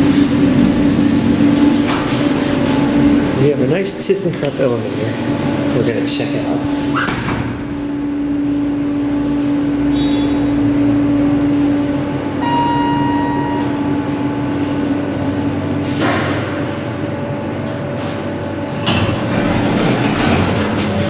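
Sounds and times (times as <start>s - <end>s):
elevator machine hum: 0.0s - 21.0s
high electronic tone: 12.4s - 14.4s
sliding doors moving: 18.0s - 21.0s.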